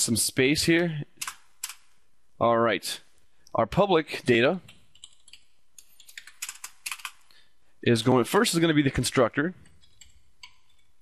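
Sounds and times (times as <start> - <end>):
keyboard typing: 4.6 - 7.3, 9.6 - 10.9.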